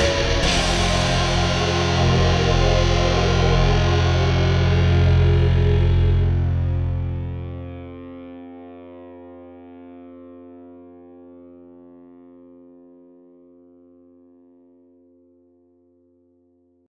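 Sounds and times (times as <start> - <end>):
distorted electric guitar chord ringing: 0.0 - 13.9.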